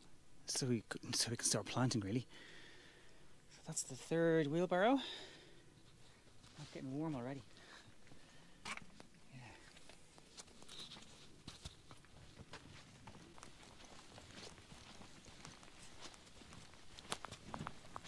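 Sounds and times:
footsteps on grass: 9.8 - 18.0.

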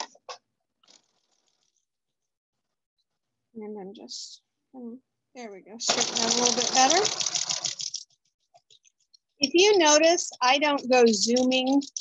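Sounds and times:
sewing machine stitching: 5.8 - 8.0.

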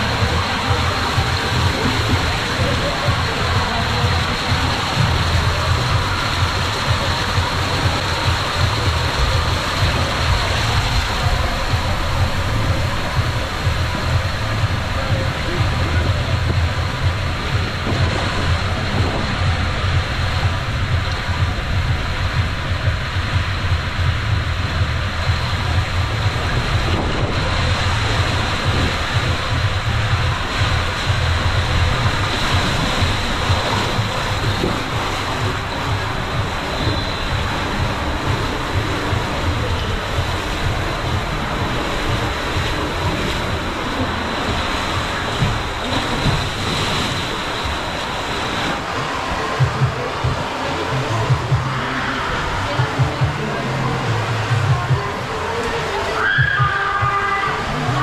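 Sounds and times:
water rushing down waterslide tube: 0.0 - 58.0.

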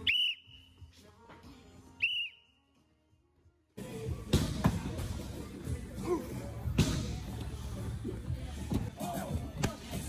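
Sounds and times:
metal whistle blasts: 0.0 - 0.8.

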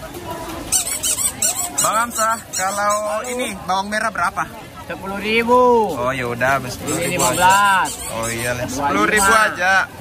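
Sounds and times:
market chatter: 0.0 - 10.0
high-pitched squeaks: 0.6 - 3.4, 6.8 - 9.5.

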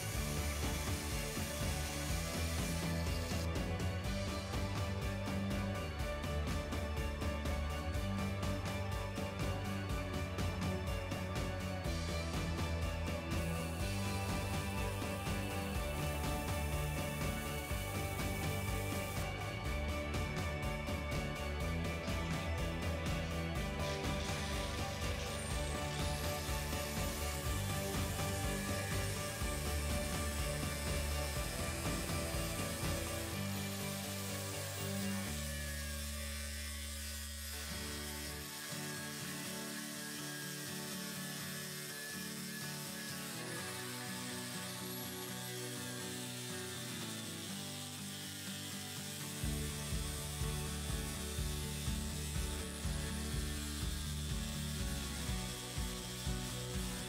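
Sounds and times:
background music with a beat: 0.0 - 38.5, 49.2 - 57.0
angle grinder grinding steel: 0.0 - 57.0.

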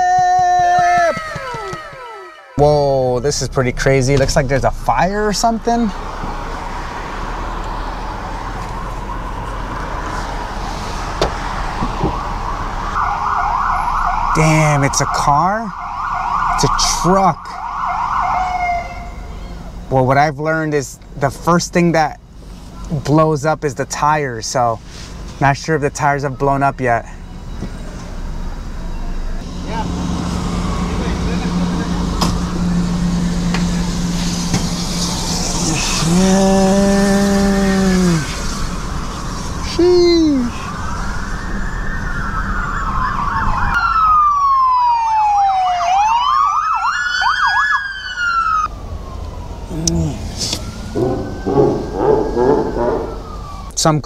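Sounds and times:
emergency vehicle sirens wailing: 0.0 - 54.0
low traffic drone: 0.0 - 54.0
deep horn blast: 50.2 - 53.2.

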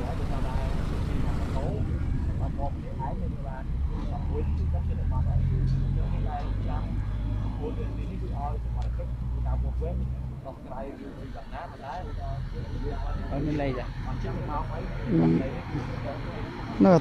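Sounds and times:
vehicle engine running: 0.0 - 16.4
bystanders' voices: 0.0 - 17.0.

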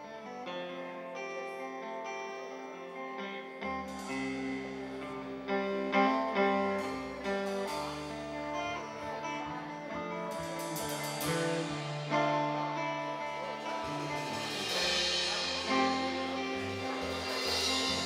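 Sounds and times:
rock band playing: 0.0 - 18.0
cymbal crash: 13.4 - 18.0.

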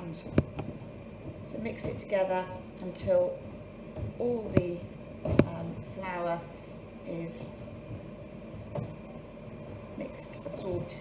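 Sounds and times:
hand mixing dough in metal bowl: 0.0 - 11.0.

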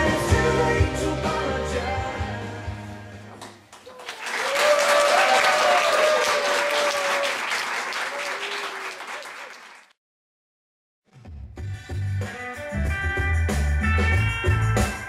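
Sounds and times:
song music: 0.0 - 3.4
audience clapping: 3.4 - 10.0.

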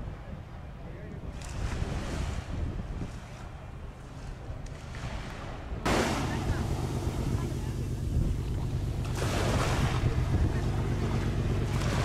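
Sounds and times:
wind rumbling on microphone: 0.0 - 12.0
small waves washing on sand: 4.1 - 12.0.

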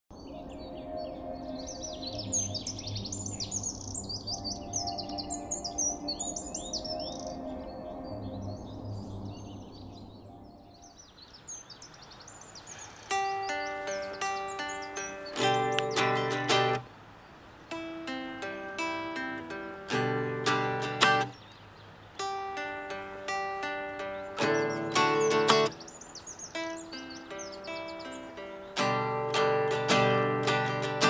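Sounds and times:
many birds chirping: 0.1 - 31.0
classical guitar plucking notes: 13.1 - 16.8, 17.7 - 21.4, 22.2 - 25.8, 26.4 - 31.0.

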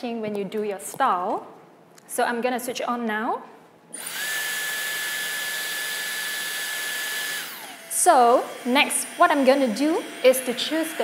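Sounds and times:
hair straightener air rush: 4.0 - 11.0.

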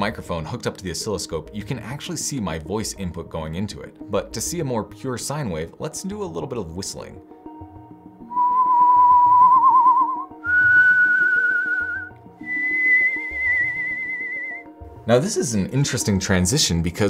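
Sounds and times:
man whistling rising tones: 8.3 - 14.7.

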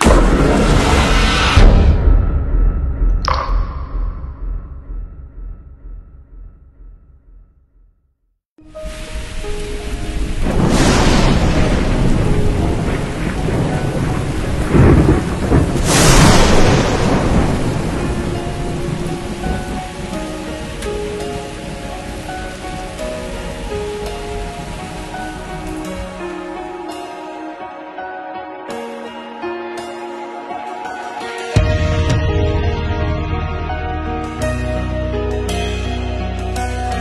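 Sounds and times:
heavy rain: 0.0 - 1.6, 8.6 - 27.5
thunder rumbling: 0.0 - 5.5, 8.8 - 26.4
soft music: 8.6 - 37.0.

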